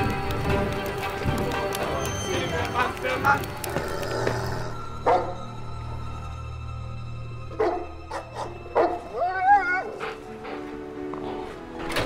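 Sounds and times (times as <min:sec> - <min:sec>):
music score: 0:00.0 - 0:12.0
dog barking: 0:05.0 - 0:05.4, 0:07.5 - 0:09.2.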